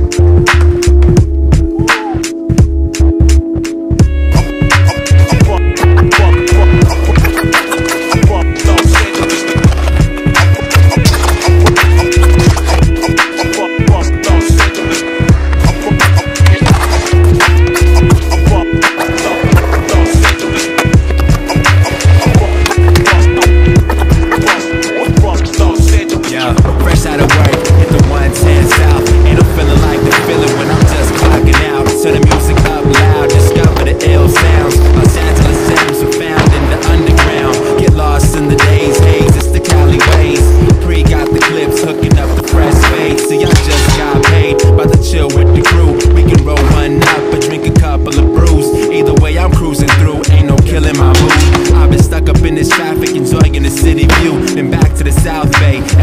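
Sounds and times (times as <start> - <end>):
background music with pulsing bass: 0.0 - 56.0
skateboard rolling and clacking: 7.2 - 13.4, 16.4 - 24.6, 26.3 - 38.5.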